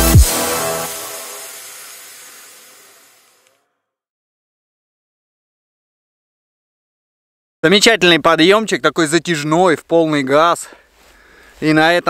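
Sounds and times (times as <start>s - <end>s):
electronic background music: 0.0s - 2.1s.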